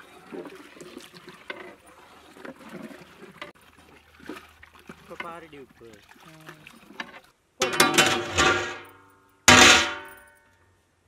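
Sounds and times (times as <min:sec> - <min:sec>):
metal rod clanging on pot lid: 0:07.6 - 0:08.9, 0:09.5 - 0:10.2.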